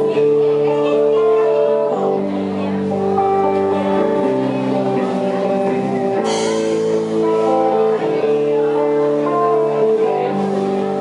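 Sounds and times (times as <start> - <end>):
live band playing slow song: 0.0 - 11.0
ringing guitar chords: 0.0 - 11.0.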